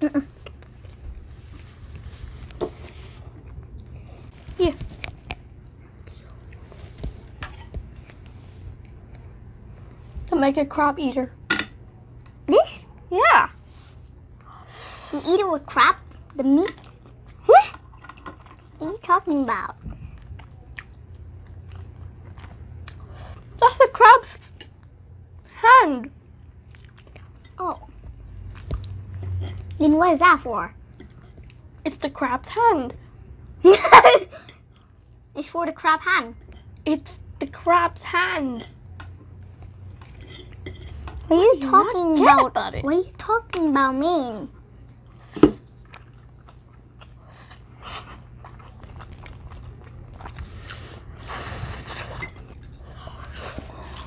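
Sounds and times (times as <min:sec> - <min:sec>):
steady low hum: 0:00.0 - 0:54.0
children chewing: 0:19.4 - 0:23.6, 0:45.0 - 0:54.0.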